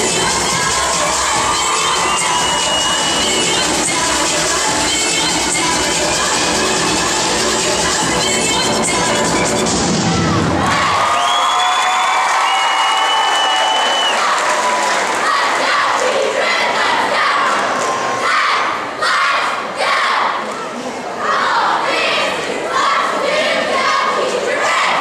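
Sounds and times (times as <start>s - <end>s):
backing music: 0.0s - 10.9s
girls cheering and screaming: 0.4s - 3.2s, 10.0s - 15.7s
squad chanting in unison: 14.0s - 20.4s, 21.2s - 25.0s.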